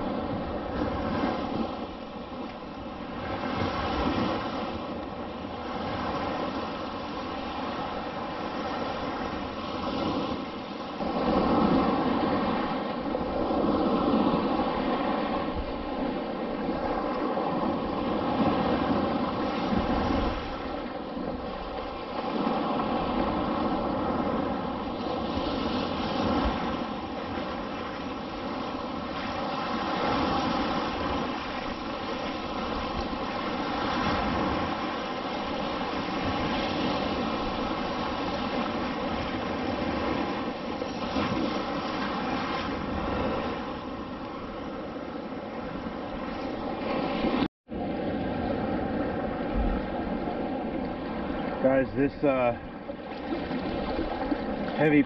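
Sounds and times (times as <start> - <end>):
waves breaking in shallows: 0.0 - 55.0.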